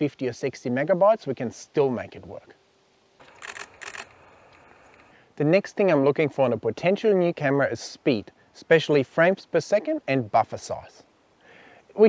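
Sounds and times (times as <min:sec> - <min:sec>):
faint steady hiss: 0:00.0 - 0:12.0
camera shutter bursts: 0:03.2 - 0:05.1.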